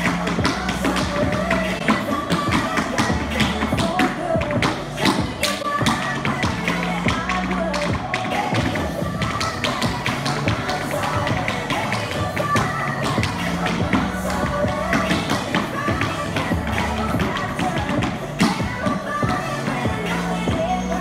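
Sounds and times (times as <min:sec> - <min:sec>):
pop song with steady beat: 0:00.0 - 0:21.0.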